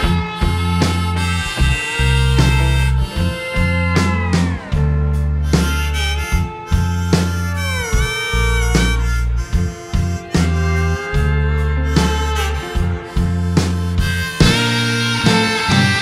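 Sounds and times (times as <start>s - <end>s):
bass line: 0.0s - 16.0s
electric guitar: 0.0s - 16.0s
harmonica solo: 0.0s - 16.0s.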